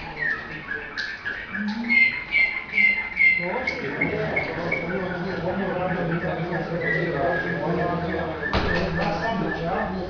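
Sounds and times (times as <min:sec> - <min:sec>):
canary singing: 0:00.0 - 0:10.0.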